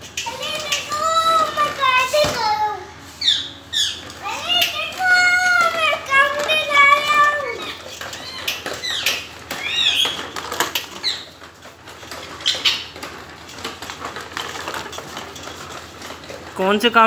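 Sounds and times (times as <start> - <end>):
plastic toy rattling on tiles: 0.0 - 2.5, 3.7 - 17.0
parakeets squawking: 3.2 - 5.4, 6.3 - 11.4, 12.4 - 12.9.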